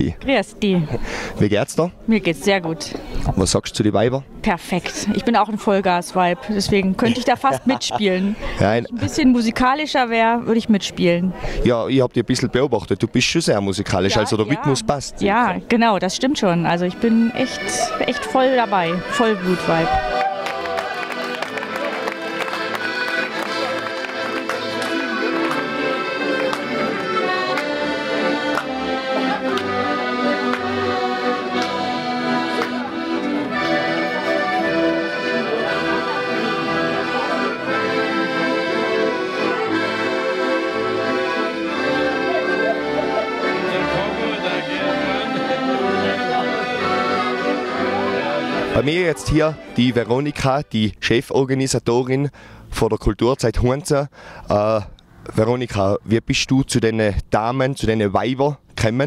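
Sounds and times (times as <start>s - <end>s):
accordion ensemble playing: 4.2s - 51.5s.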